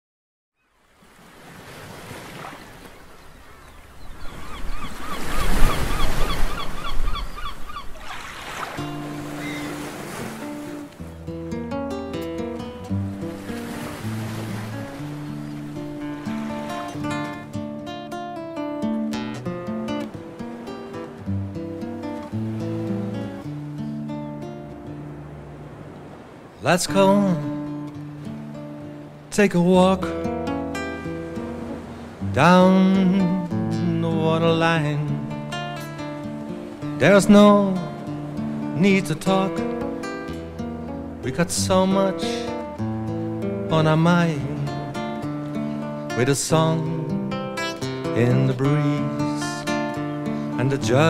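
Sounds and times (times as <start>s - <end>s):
surf on a sandy beach: 0.7s - 51.0s
acoustic guitar picking arpeggios: 8.8s - 25.5s, 26.9s - 51.0s.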